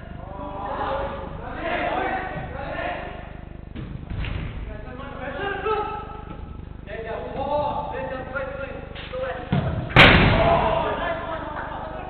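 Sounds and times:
dull thump of ball kick: 9.5s - 10.6s
ball slamming into boards: 9.5s - 10.9s.

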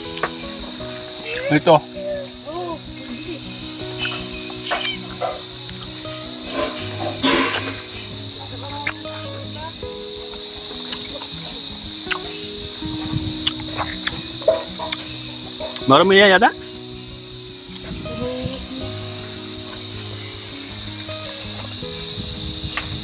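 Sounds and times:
insect chorus: 0.0s - 23.0s
soft background music: 0.0s - 23.0s.

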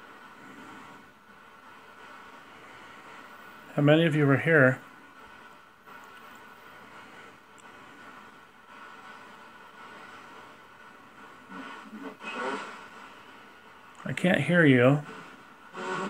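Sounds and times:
radio static hiss: 0.0s - 16.0s.

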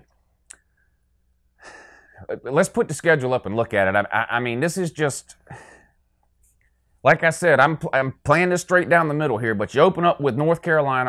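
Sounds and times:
man drawing a breath: 1.6s - 2.2s.

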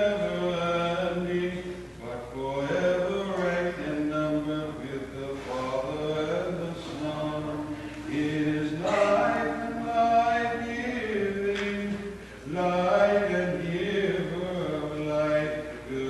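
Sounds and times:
voices chanting slow melody: 7.5s - 11.4s.

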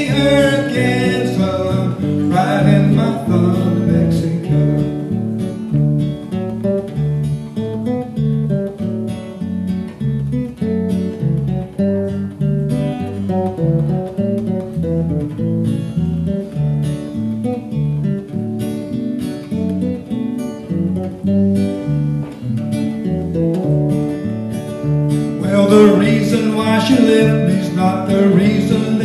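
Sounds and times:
acoustic guitar: 0.0s - 29.0s
electric bass guitar: 0.0s - 29.0s.

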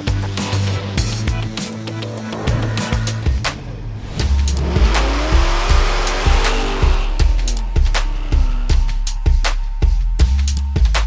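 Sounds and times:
music with steady drum beat: 0.0s - 11.0s
car engine revving: 0.4s - 10.3s.

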